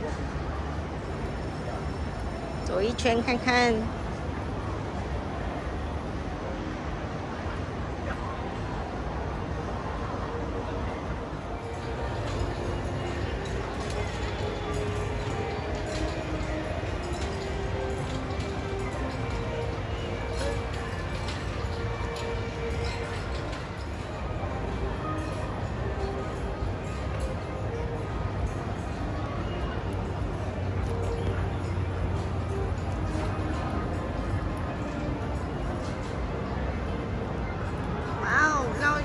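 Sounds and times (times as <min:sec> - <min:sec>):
faint music: 0:00.0 - 0:39.0.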